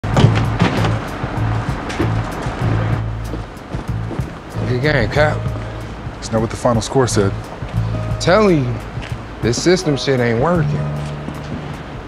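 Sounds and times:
background music with bass line: 0:00.0 - 0:12.0
sharp percussive hits: 0:03.9 - 0:12.0.

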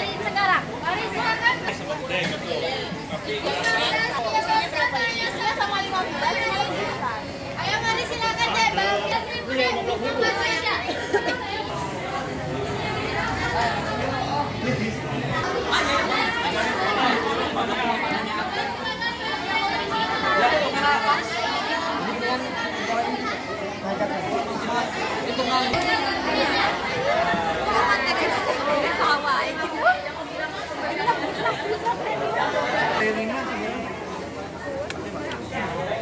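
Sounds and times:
crowd chattering: 0:00.0 - 0:36.0.

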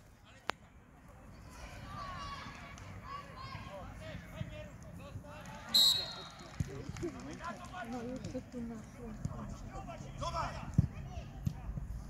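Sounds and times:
referee's whistle blast: 0:05.8 - 0:06.3.

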